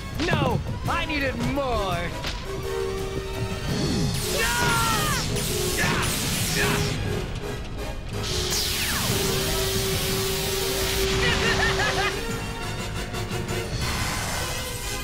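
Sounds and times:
hissing energy-beam blast: 4.0s - 7.0s, 8.2s - 12.0s.

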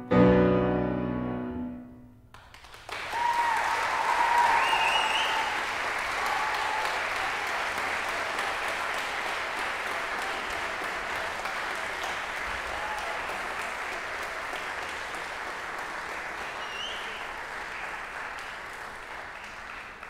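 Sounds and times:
audience applause: 2.4s - 20.0s
shouted cheers: 2.9s - 15.0s.

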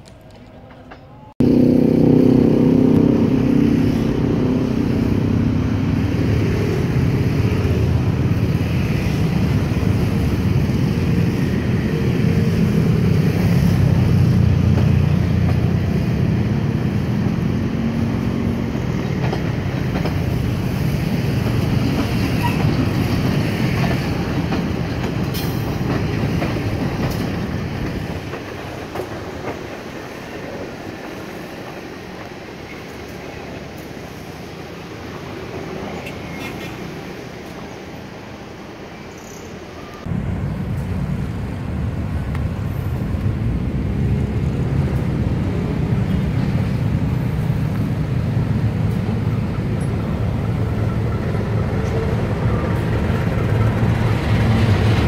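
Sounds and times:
passenger train passing: 0.0s - 55.0s.

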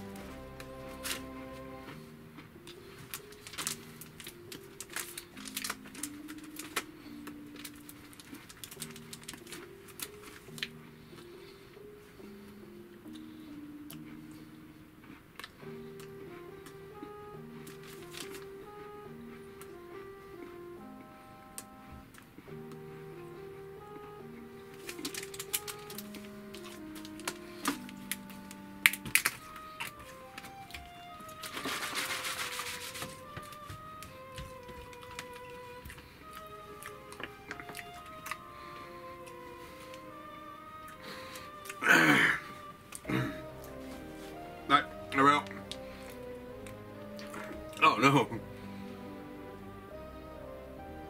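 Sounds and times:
instrumental music: 0.0s - 51.0s.

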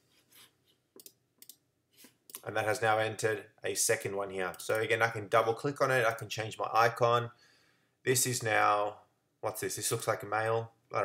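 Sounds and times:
faint mouse clicks: 1.0s - 2.5s.

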